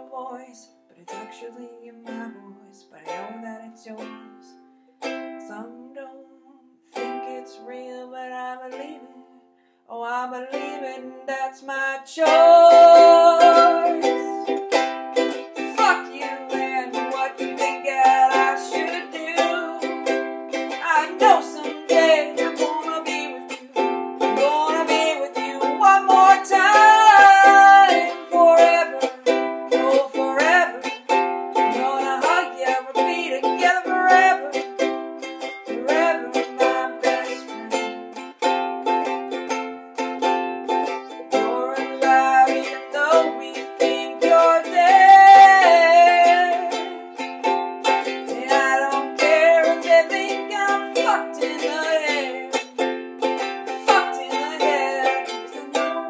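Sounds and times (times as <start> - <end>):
person singing: 0.0 - 56.0
ukulele strumming: 0.0 - 56.0.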